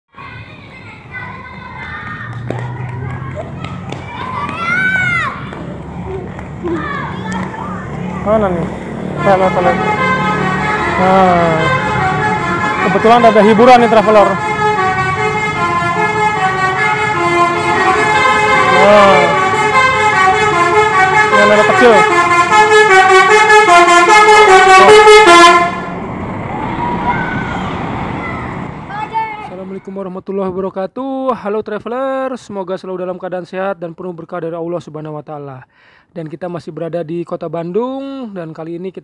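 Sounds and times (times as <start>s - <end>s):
children calling out: 0.1s - 8.3s, 26.6s - 29.5s
reedy horn-like melody: 8.8s - 26.1s.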